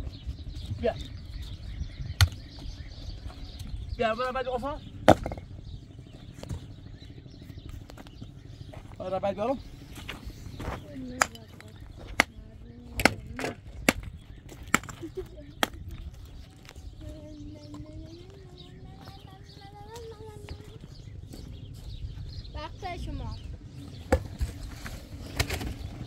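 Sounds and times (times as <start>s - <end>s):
stones knocking together: 5.0s - 5.5s.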